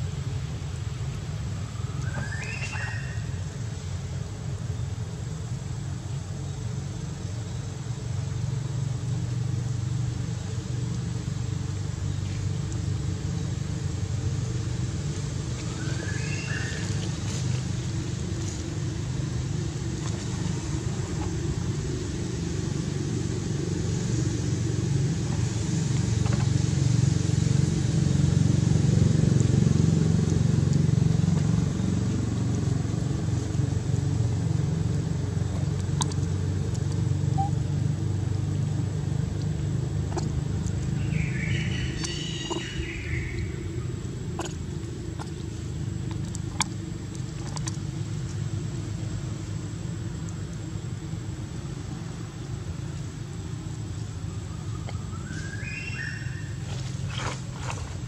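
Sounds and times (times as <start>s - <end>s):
low engine hum: 0.0s - 58.0s.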